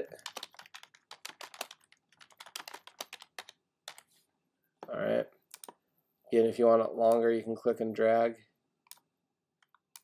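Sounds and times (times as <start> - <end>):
computer keyboard typing: 0.0 - 4.1, 5.5 - 5.8, 8.9 - 10.0.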